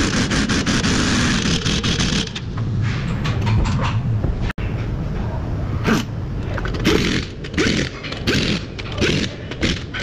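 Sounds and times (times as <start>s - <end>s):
pneumatic impact wrench: 0.0s - 2.4s, 5.9s - 10.0s.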